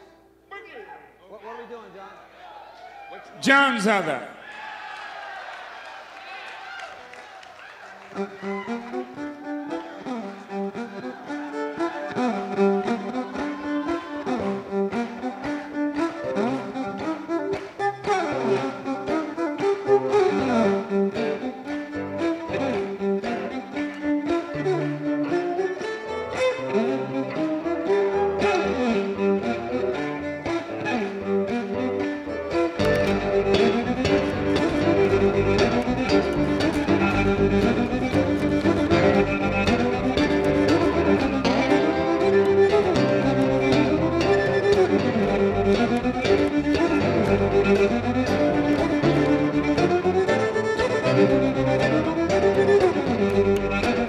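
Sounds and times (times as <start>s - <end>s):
bluesy violin tune: 7.9s - 54.0s
lower accompanying instruments: 8.2s - 54.0s.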